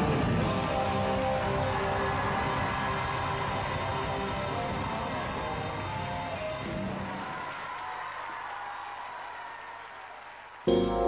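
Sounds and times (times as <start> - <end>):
live rock band: 0.0 - 7.1.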